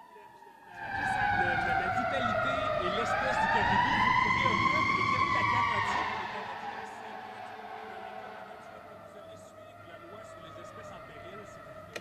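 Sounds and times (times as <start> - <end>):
emergency siren wailing: 0.0 - 12.0.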